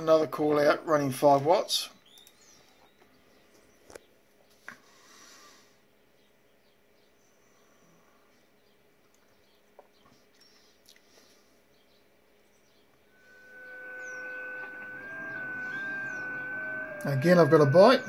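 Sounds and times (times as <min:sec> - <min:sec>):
background hiss: 0:04.5 - 0:05.9
faint high chirps: 0:12.5 - 0:18.0
digital radio tones: 0:13.2 - 0:18.0.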